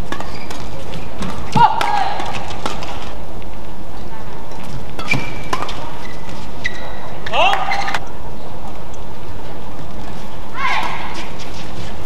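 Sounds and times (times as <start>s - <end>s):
shoes squeaking on court floor: 0.0s - 1.6s, 4.5s - 8.1s
rackets hitting shuttlecock: 0.0s - 3.2s, 4.9s - 8.1s
arena noise: 0.0s - 12.0s.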